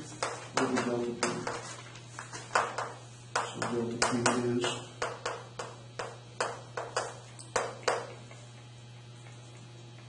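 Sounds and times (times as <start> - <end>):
chalk tapping on a chalkboard: 0.2 - 8.2.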